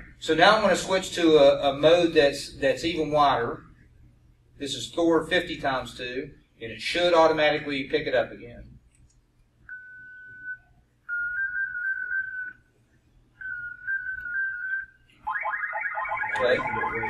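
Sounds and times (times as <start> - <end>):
whistling tone bursts: 9.7 - 12.7, 13.4 - 15.0.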